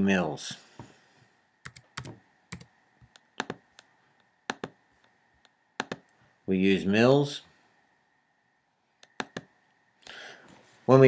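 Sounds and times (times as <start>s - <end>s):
keyboard keystroke clicks: 1.7s - 3.9s, 4.5s - 4.8s, 5.8s - 6.1s, 9.0s - 9.5s.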